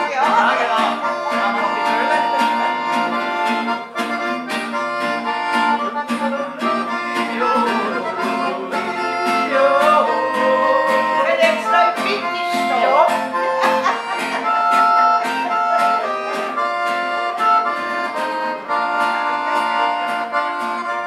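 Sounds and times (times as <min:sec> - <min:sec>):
acoustic guitar strummed: 0:00.0 - 0:21.0
piano accordion playing: 0:00.0 - 0:21.0
man singing: 0:06.0 - 0:12.9.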